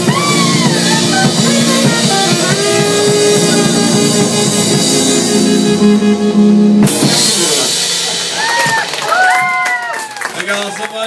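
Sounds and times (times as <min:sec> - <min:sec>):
saxophones holding long notes: 0:00.0 - 0:08.3
drum kit: 0:00.0 - 0:10.5.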